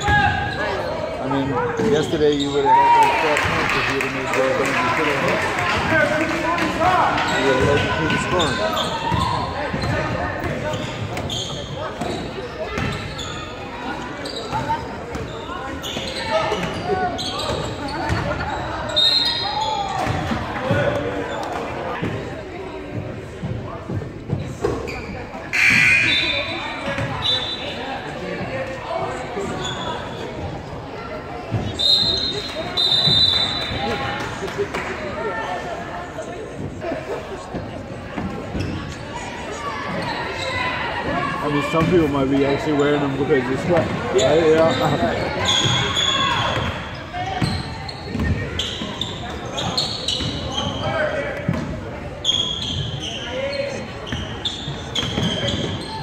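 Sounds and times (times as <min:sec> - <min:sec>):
voices echoing: 0:00.0 - 0:56.0
short high squeaks: 0:52.2 - 0:56.0.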